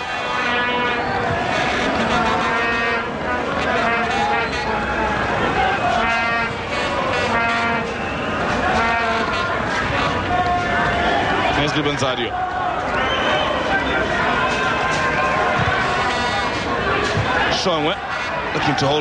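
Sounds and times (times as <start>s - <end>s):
crowd noise: 0.0s - 19.0s
vuvuzelas droning: 0.0s - 19.0s.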